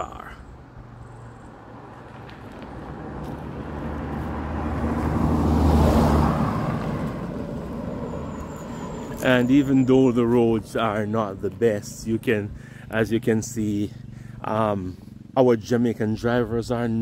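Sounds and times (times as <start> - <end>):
car passing by: 1.5 - 10.9.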